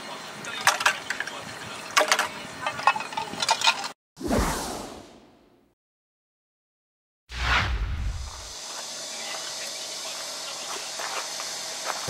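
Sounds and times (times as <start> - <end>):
falling whoosh: 7.3 - 8.5.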